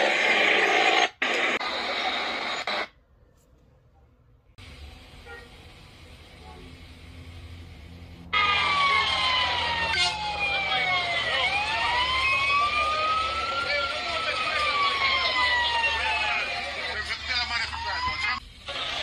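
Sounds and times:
emergency siren wailing: 0:08.0 - 0:18.4.

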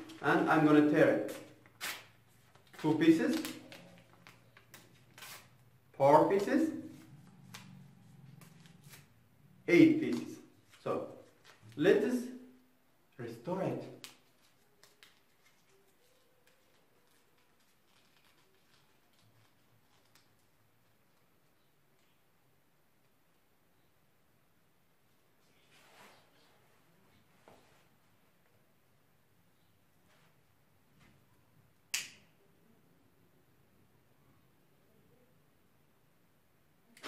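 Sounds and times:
paper crackling between fingers: 0:01.3 - 0:05.6, 0:13.8 - 0:21.3.

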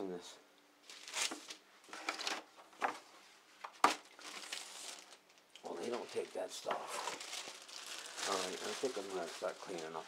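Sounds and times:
rustling and crinkling handling: 0:00.8 - 0:10.0
person speaking: 0:05.6 - 0:07.2, 0:08.1 - 0:10.0.

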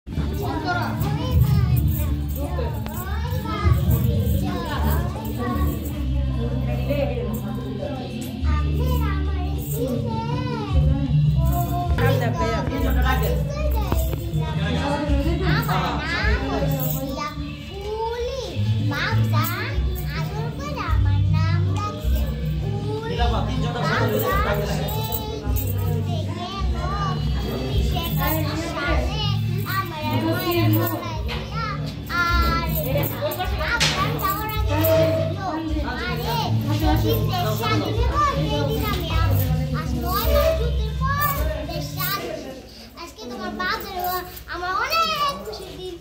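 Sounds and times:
girl speaking in sing-song voice: 0:00.1 - 0:06.7, 0:07.3 - 0:46.0
children chattering: 0:00.1 - 0:46.0
music playing: 0:00.1 - 0:46.0.

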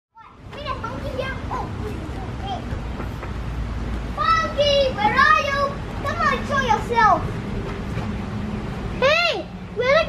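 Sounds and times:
children calling and chattering: 0:00.1 - 0:10.0.

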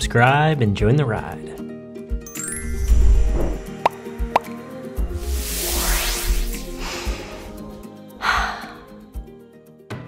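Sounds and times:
rising bloop effects: 0:02.5 - 0:03.9, 0:05.2 - 0:06.8.

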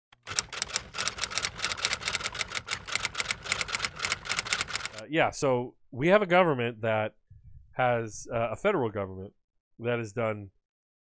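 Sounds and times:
typewriter keys clacking: 0:00.2 - 0:05.0.

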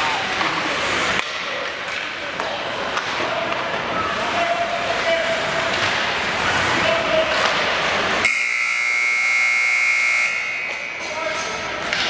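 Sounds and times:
scoreboard horn buzzing: 0:08.2 - 0:10.6.

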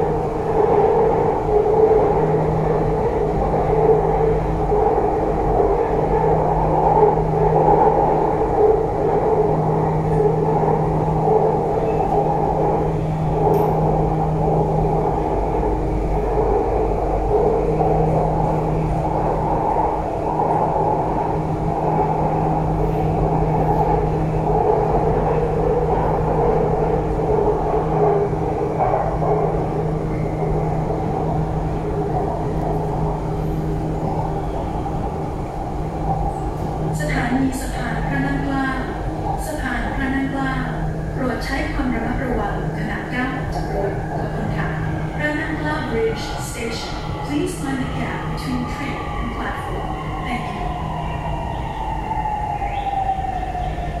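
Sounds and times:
metro train rumble and hum: 0:00.0 - 0:54.0.

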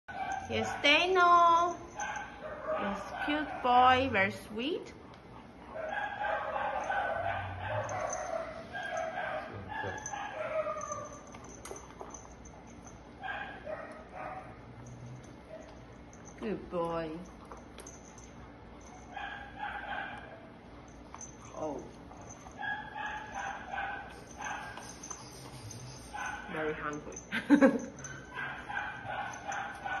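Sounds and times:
dog whining: 0:05.7 - 0:12.5, 0:21.2 - 0:26.6.

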